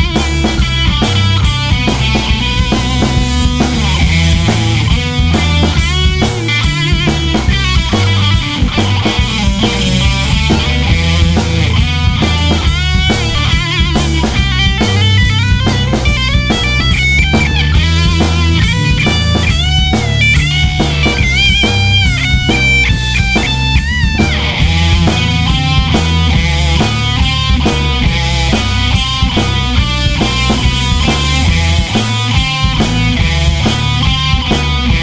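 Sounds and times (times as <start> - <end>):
electric guitar lead line: 0.0 - 35.0
heavy rock band playing: 0.0 - 35.0.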